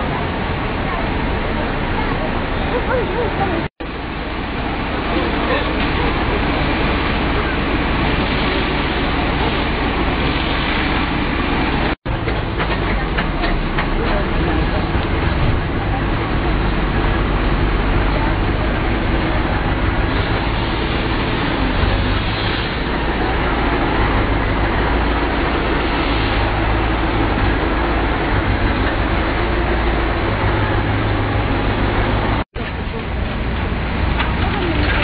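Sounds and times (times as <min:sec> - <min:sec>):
diesel engine running: 0:00.0 - 0:35.0.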